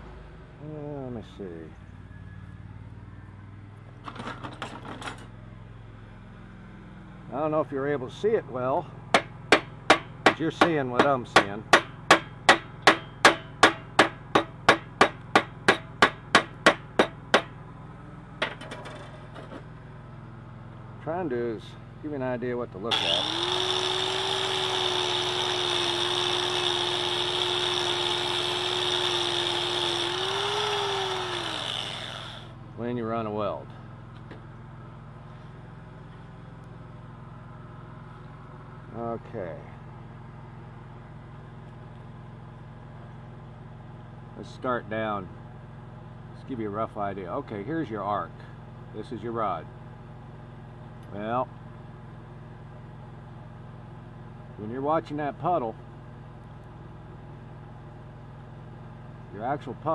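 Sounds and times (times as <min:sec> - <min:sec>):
welder engine running: 0:22.7 - 0:32.9
angle grinder with wire brush: 0:22.9 - 0:32.6.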